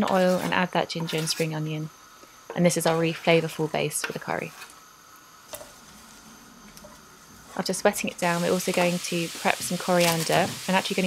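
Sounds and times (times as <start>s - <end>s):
faint sizzle in frying pan: 0.0s - 11.0s.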